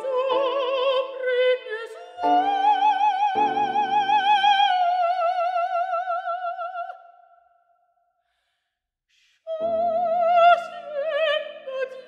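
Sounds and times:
singer breathing in: 8.2 - 9.5.

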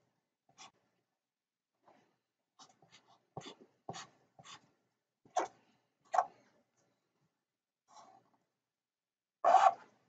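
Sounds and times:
marker scratching on paper: 0.5 - 0.8, 2.6 - 4.7, 9.4 - 9.9.

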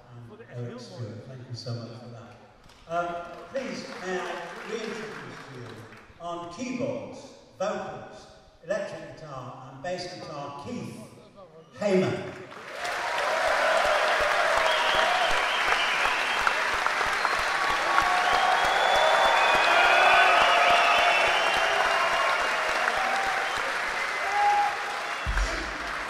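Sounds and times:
audience applauding and cheering: 3.2 - 6.1, 12.4 - 26.0.

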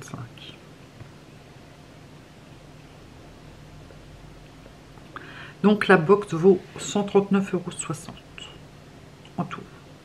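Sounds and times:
faint low hum: 0.0 - 10.0
woman's voice: 5.6 - 8.6.

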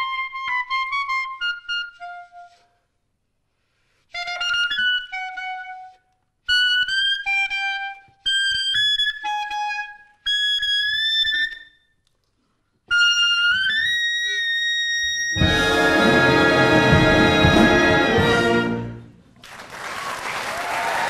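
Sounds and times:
solo clarinet: 0.0 - 2.9, 4.1 - 11.7, 12.9 - 19.1
band playing: 15.4 - 19.2.

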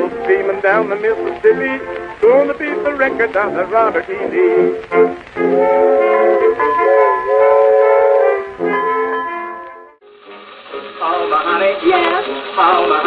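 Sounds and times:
old dull recording: 0.0 - 13.0
old recording of brass band: 0.0 - 13.0.

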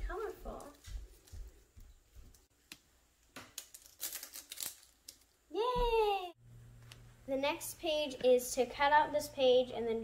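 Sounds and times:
paper crumpling: 3.6 - 5.3
child cheering: 5.5 - 6.4.

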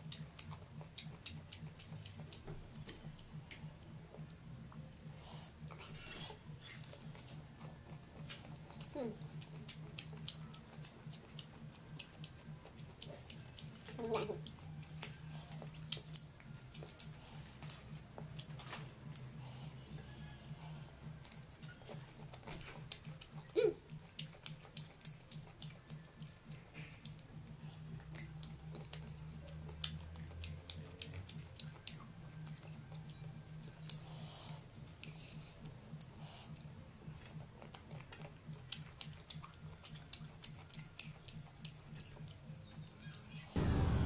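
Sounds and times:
crisp chewing clicks: 0.0 - 4.4, 6.7 - 19.4, 21.2 - 34.0, 35.0 - 43.4
low steady hum: 0.0 - 44.0.

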